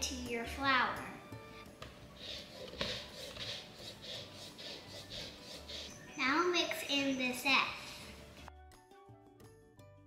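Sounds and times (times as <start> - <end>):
soft background music: 0.0 - 10.0
orange rind scraping on grater: 2.1 - 6.0.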